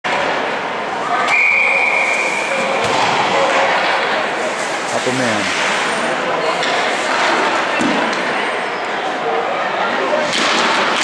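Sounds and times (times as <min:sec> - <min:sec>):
echoing crowd chatter: 0:00.1 - 0:11.0
referee's whistle: 0:01.2 - 0:02.7.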